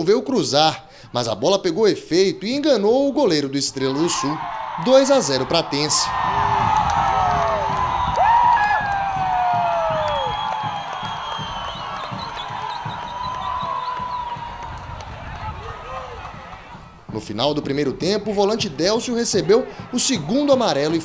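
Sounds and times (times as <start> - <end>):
crowd cheering and shouting: 3.8 - 17.1, 18.3 - 21.0.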